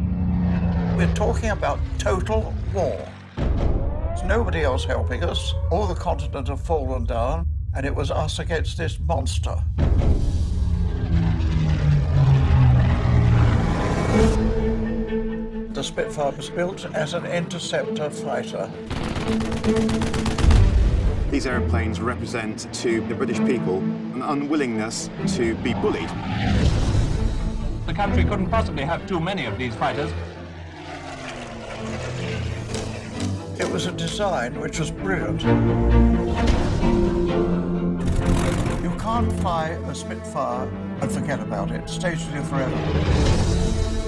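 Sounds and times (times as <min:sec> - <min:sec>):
propeller plane engine in flight: 0:00.0 - 0:03.7, 0:10.2 - 0:14.9, 0:28.6 - 0:34.2
deep rumble: 0:00.0 - 0:15.8
piston aircraft engines droning: 0:00.0 - 0:44.0.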